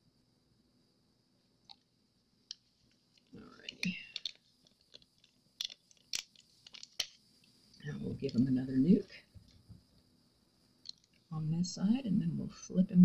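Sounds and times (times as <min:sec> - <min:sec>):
clicks and taps of handling: 0:02.5 - 0:07.2.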